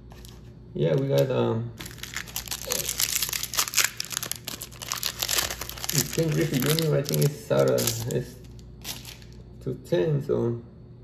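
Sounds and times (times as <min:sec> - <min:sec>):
foil pack crinkling and tearing: 0:01.2 - 0:09.4.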